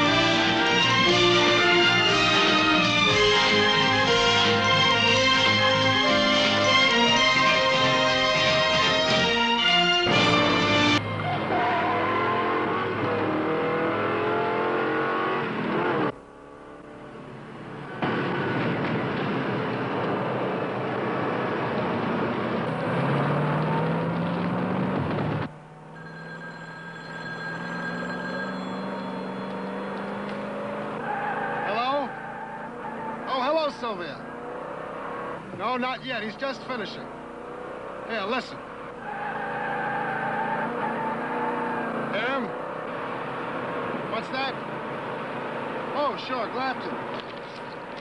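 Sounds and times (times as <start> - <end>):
theme music: 0.0 - 11.6
car engine accelerating: 0.0 - 48.0
road noise: 0.0 - 48.0.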